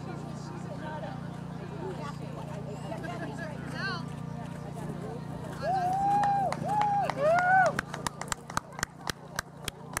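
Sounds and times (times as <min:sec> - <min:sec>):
hand clapping: 0:05.9 - 0:10.0.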